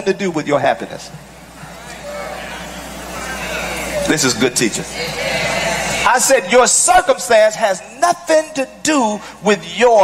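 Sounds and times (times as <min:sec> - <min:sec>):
steady low room hum: 0:00.0 - 0:10.0
faint voices: 0:01.1 - 0:06.3.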